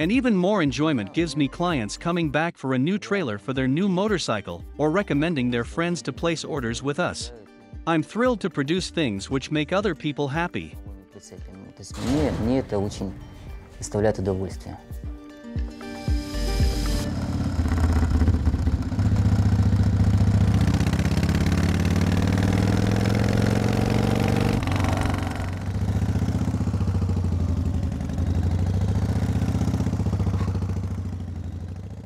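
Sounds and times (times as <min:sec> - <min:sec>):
motorcycle engines accelerating: 0:17.0 - 0:32.0.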